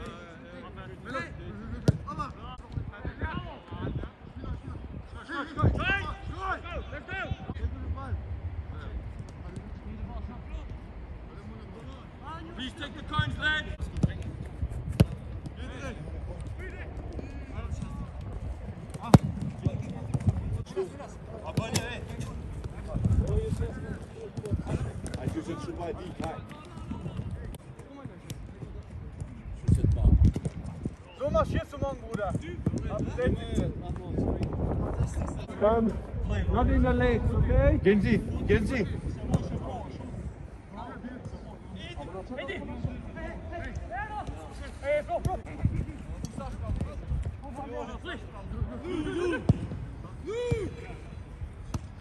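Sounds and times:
players' voices: 0:00.0 - 0:52.0
balls being kicked: 0:13.8 - 0:15.6, 0:17.7 - 0:20.6.

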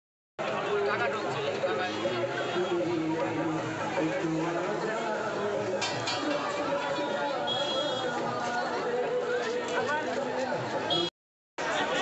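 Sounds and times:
crowd chatter: 0:00.4 - 0:12.0.

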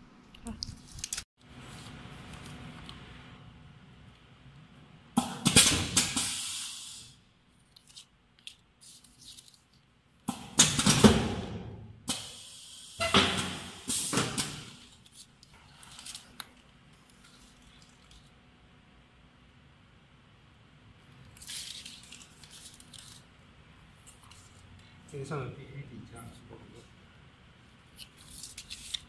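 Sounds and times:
foil pouches crinkling: 0:21.3 - 0:23.3.

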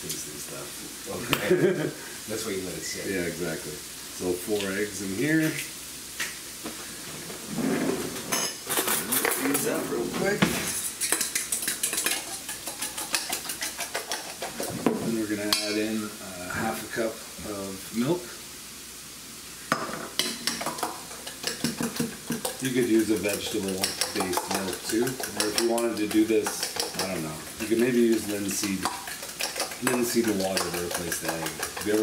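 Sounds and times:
onions sizzling in frying pan: 0:00.0 - 0:32.0
utensil beating eggs in metal bowl: 0:10.7 - 0:16.0, 0:19.7 - 0:32.0.

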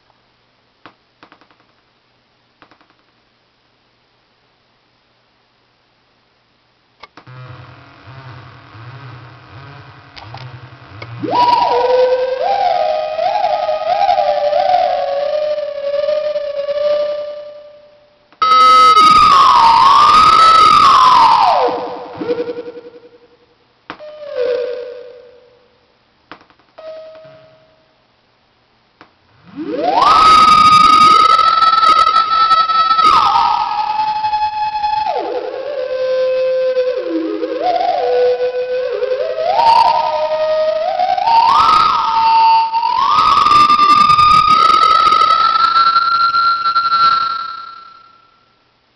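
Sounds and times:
wavering theremin-like synth tone: 0:10.7 - 0:23.3, 0:24.0 - 0:25.7, 0:26.8 - 0:27.8, 0:29.3 - 0:48.4.

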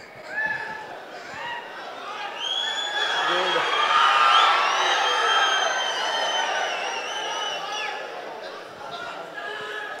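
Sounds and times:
large crowd cheering: 0:00.2 - 0:10.0.

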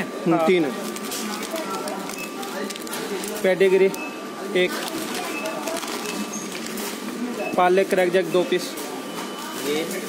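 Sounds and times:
murmur of shop voices: 0:00.0 - 0:10.0.

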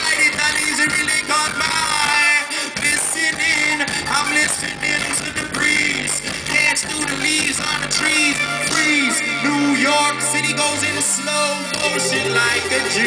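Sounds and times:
live band playing: 0:00.0 - 0:13.0
man singing into a microphone: 0:00.0 - 0:13.0.

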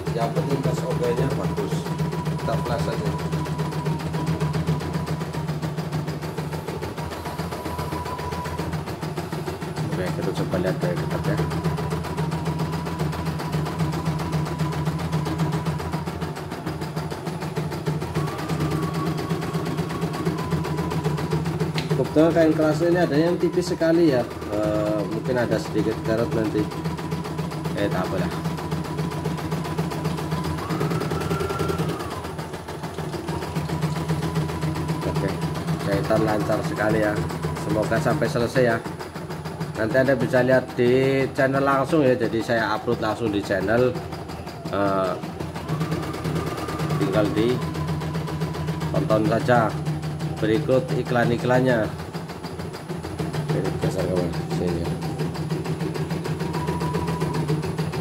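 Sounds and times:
embroidery machine needle ticking: 0:00.0 - 0:58.0
machine motor hum: 0:00.0 - 0:58.0.

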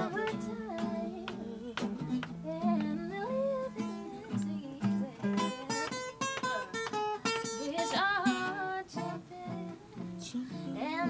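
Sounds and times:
acoustic guitar low notes: 0:00.0 - 0:11.0.

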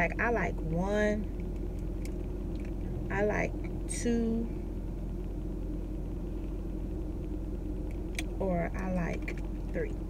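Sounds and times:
car hum inside cabin: 0:00.0 - 0:10.0.

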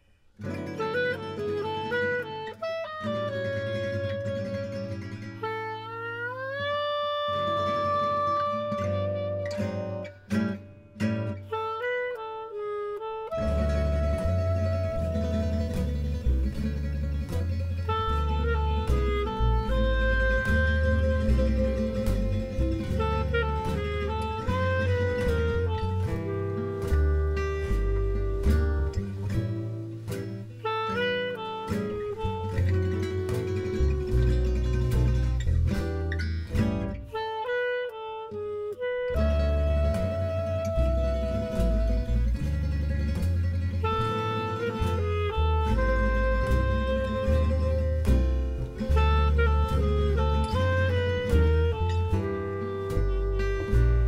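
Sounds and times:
acoustic guitars: 0:00.0 - 0:54.0
clarinet melody: 0:00.0 - 0:54.0
jazz band playing: 0:00.4 - 0:54.0
double bass: 0:00.5 - 0:54.0.

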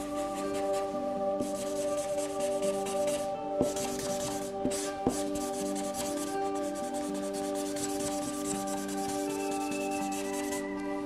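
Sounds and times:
marker rubbing on paper: 0:00.0 - 0:10.6
soft background music: 0:00.0 - 0:11.0.

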